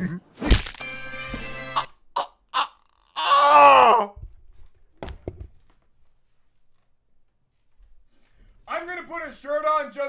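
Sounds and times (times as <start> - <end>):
man yelling in shock: 2.2 - 4.2.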